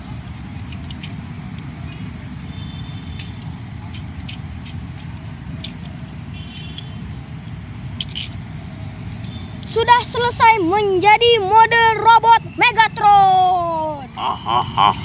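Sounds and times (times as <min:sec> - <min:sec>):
plastic toy parts clicking: 0:00.2 - 0:02.1, 0:03.0 - 0:08.5.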